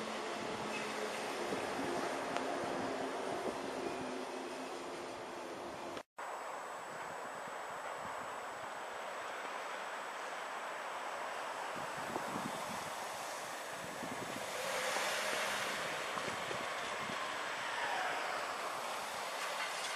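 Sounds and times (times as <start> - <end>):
car approaching: 9.3 - 19.9
wind on microphone: 11.8 - 17.6.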